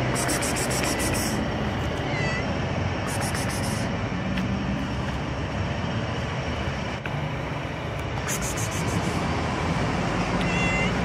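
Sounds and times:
kitten meowing: 2.0 - 2.5, 10.4 - 11.0.

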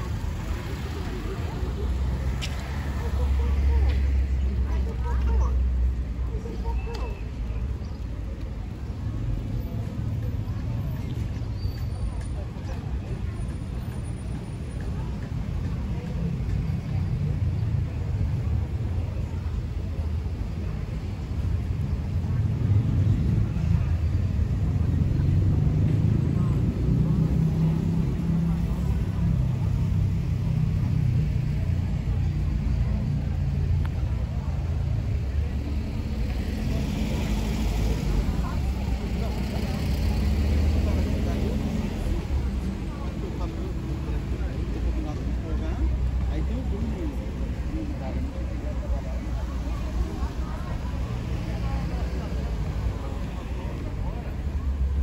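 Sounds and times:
car traffic rumbling: 0.0 - 55.0
indistinct voices of passers-by: 0.0 - 55.0.

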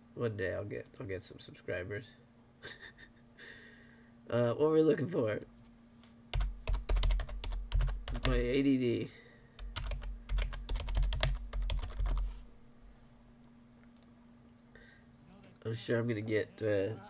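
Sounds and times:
faint steady hum: 0.0 - 17.0
fast typing on keyboard: 6.3 - 8.6, 9.6 - 12.3.

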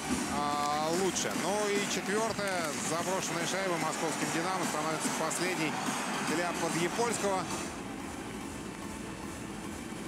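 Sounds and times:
crowd murmur in arena: 0.0 - 10.0.

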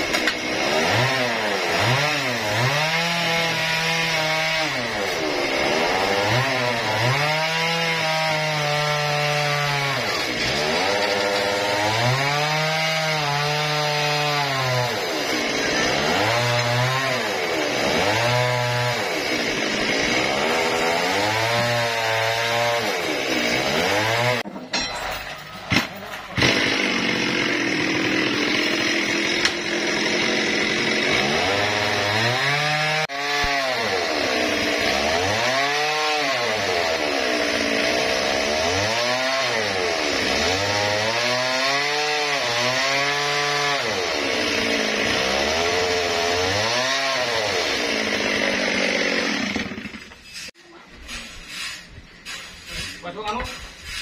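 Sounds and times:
chainsaw cutting log: 0.0 - 24.5, 25.7 - 54.0.

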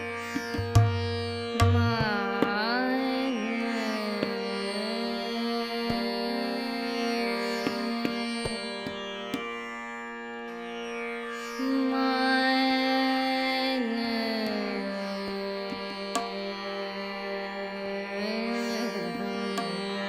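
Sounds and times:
slow tabla strokes: 0.0 - 2.7
harmonium: 0.0 - 20.0
tanpura drone: 0.0 - 20.0
woman singing ornamented phrases: 1.7 - 8.9, 11.6 - 20.0.

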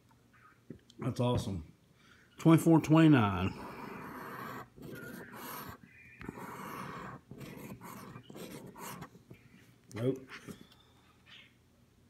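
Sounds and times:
lottery ticket being scratched: 3.5 - 9.2.

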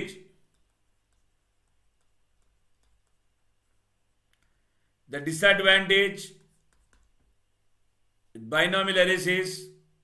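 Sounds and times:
person speaking: 0.0 - 7.4, 8.2 - 10.0
stylus tapping on tablet: 0.4 - 3.5, 6.4 - 7.3.

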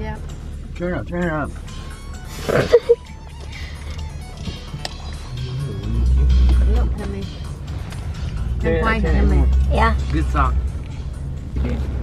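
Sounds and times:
song on car stereo: 0.2 - 11.6.

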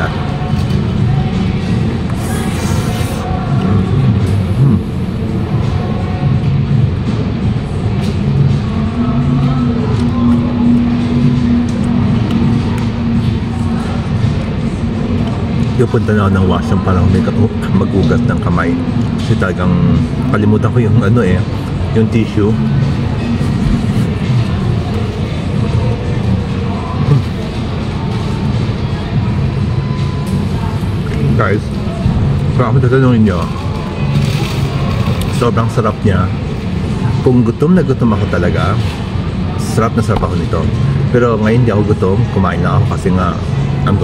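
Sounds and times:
background music: 0.0 - 44.0
rumble of busy station concourse: 0.0 - 44.0.

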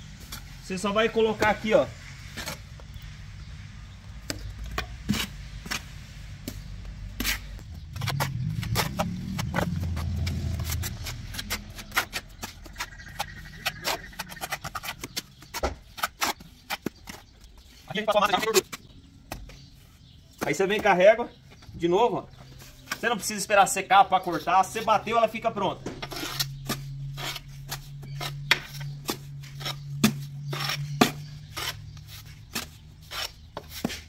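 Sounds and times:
low rumble: 6.8 - 14.4
trowel scraping and tapping mortar: 7.2 - 19.7, 25.8 - 34.0.

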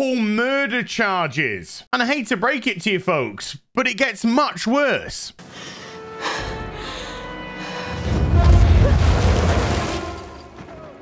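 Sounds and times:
deep booming impact: 8.0 - 10.6.

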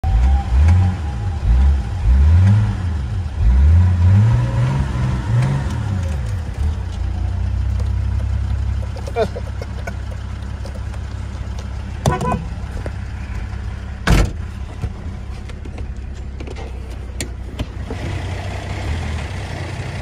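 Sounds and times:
diesel engine revving and idling: 0.0 - 20.0.

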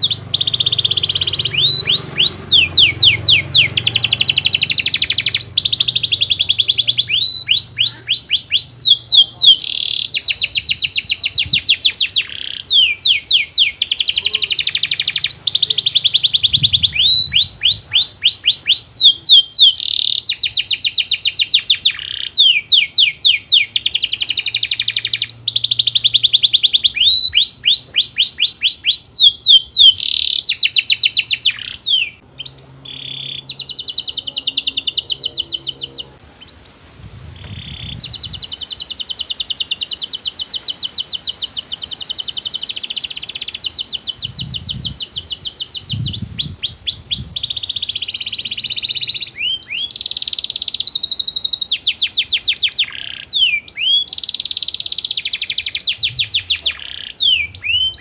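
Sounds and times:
canary singing: 0.0 - 58.0.

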